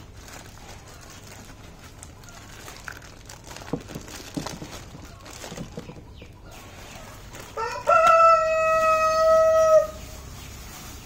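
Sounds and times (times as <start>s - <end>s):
rooster crowing: 7.5s - 10.1s.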